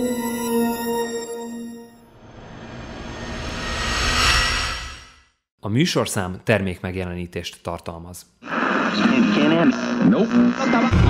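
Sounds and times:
whoosh with low rumble: 2.2 - 5.4.

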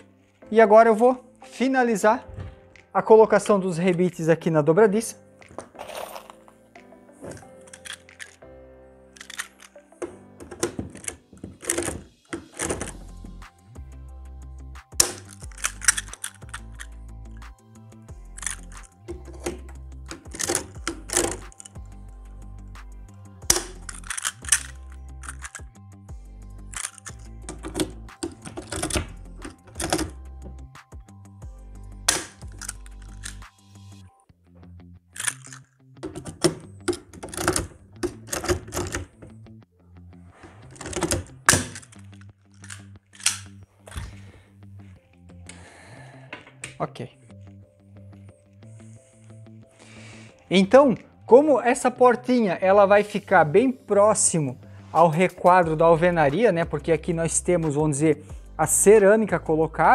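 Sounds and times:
background music with bass: 2.0 - 59.9
rivet tool clicking: 9.2 - 9.8, 15.0 - 17.0, 18.3 - 21.8, 23.4 - 25.8, 26.7 - 30.2, 32.1 - 33.5, 35.2 - 39.1, 40.8 - 44.0.

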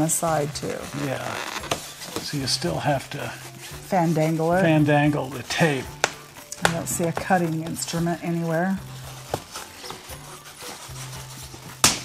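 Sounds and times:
tape ripping: 0.0 - 2.4
faint rubbing: 0.0 - 11.8
tape peeled off cardboard: 0.0 - 12.0.

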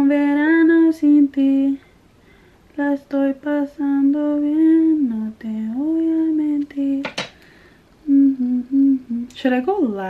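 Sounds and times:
woman humming a tune: 8.0 - 9.4.

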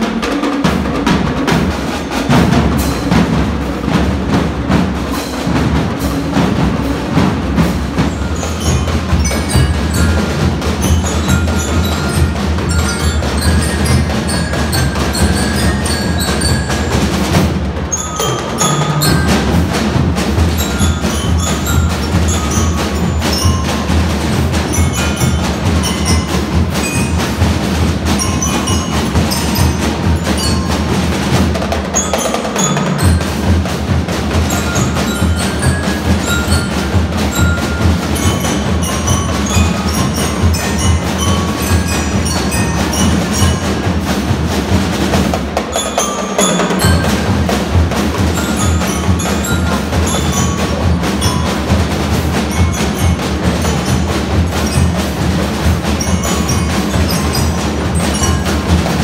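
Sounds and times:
mallet bells melody: 0.0 - 4.0, 4.6 - 59.0
marching drums: 0.0 - 59.0.

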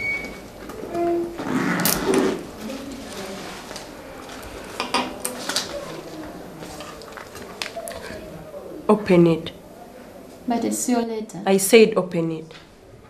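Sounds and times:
paper rustling: 2.1 - 8.3.

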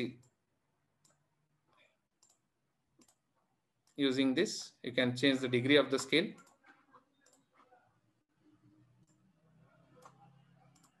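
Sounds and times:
faint computer mouse clicks: 1.0 - 2.4, 3.0 - 3.2, 10.0 - 11.0.

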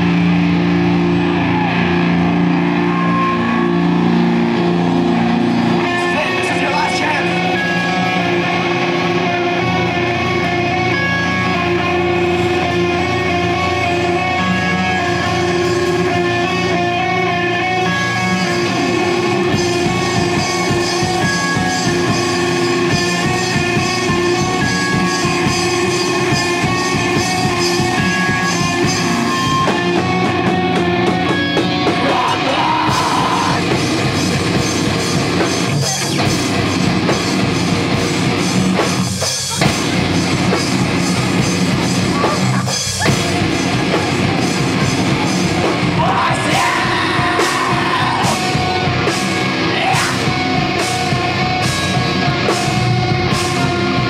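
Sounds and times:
bass guitar: 0.0 - 54.0
distorted electric guitars: 0.0 - 54.0
drum kit: 0.0 - 54.0
shouted vocals: 0.9 - 10.0, 31.3 - 33.8, 42.0 - 51.4.

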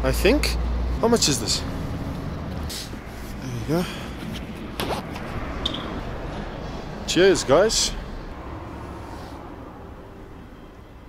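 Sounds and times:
man speaking: 0.0 - 1.7, 3.4 - 4.1, 7.1 - 8.0.

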